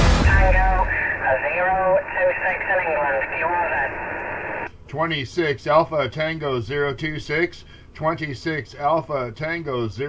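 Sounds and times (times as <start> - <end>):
radio static hiss: 0.0 - 4.7
garbled voice over cb radio: 0.2 - 4.7.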